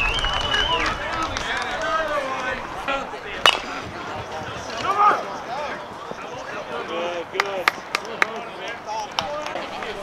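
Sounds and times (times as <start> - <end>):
voices shouting: 0.4 - 7.2.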